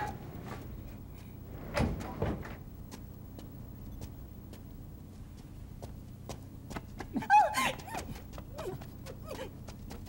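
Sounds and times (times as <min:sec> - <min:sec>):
woman crying out: 0:07.2 - 0:09.6.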